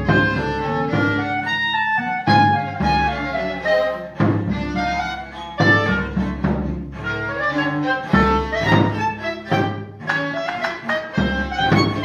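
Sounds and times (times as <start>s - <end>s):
bowed strings chamber music: 0.0s - 12.0s.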